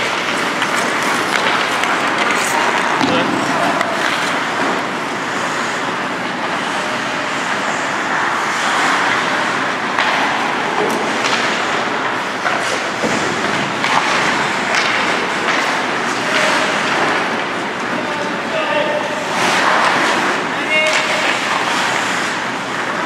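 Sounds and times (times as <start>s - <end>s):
hockey sticks and puck clacking: 0.0s - 23.0s
skates scraping on ice: 0.0s - 23.0s.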